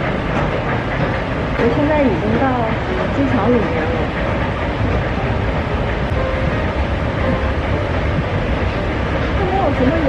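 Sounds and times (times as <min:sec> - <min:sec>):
moving walkway rumble: 0:00.0 - 0:10.0.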